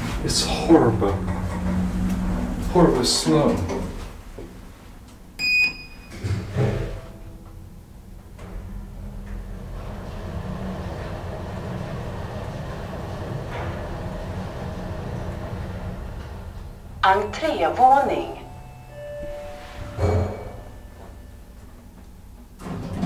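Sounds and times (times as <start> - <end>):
elevator doors closing thud: 0.0 - 4.6, 5.4 - 23.0
elevator hum and rumble: 0.0 - 23.0
short electronic beep: 18.4 - 21.5.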